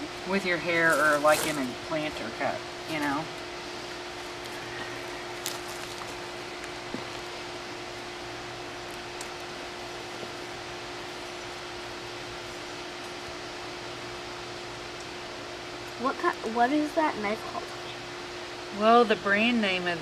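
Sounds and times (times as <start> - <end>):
steady machine hum: 0.0 - 20.0.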